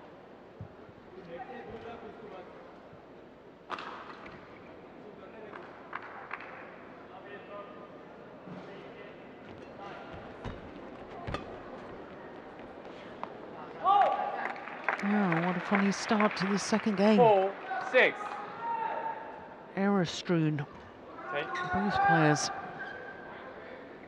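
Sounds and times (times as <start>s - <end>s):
hall background noise: 7.8s - 24.0s.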